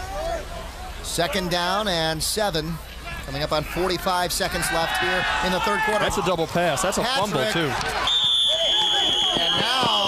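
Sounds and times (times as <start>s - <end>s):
referee whistle blast: 8.0s - 10.0s.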